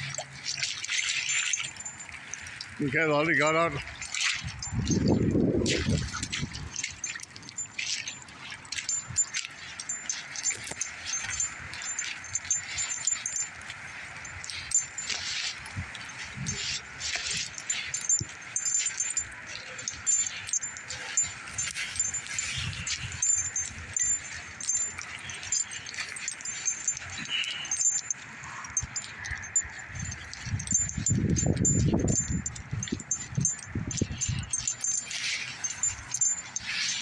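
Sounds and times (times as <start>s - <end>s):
footsteps through wet scrub: 0.0s - 37.0s
high pulsing chirp: 16.4s - 37.0s.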